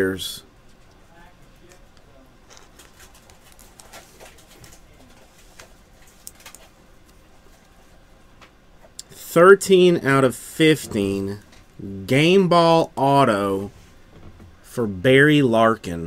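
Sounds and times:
cards and plastic holders handled: 0:01.7 - 0:07.7.

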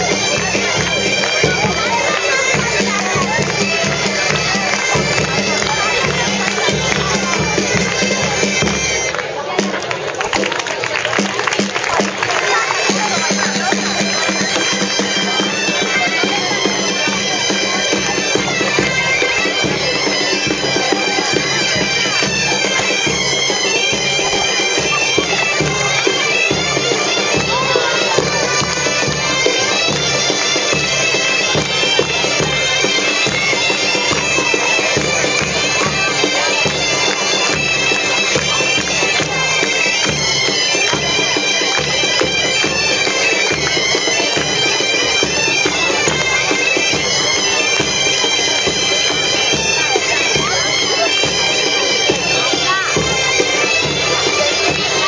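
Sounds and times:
bagpipes playing a tune: 0:00.0 - 0:55.0
drum beating steady rhythm: 0:00.0 - 0:55.0.

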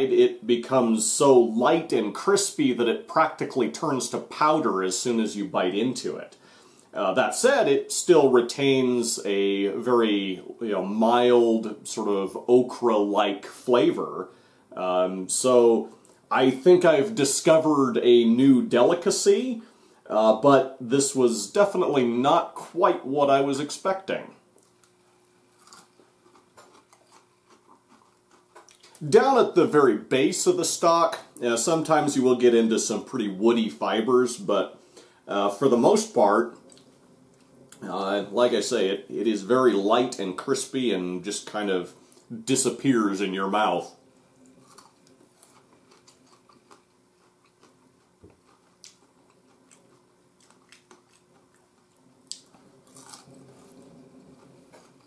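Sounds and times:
faint steady hum: 0:00.0 - 0:55.0
crunching and chewing: 0:24.5 - 0:29.0, 0:44.2 - 0:55.0.

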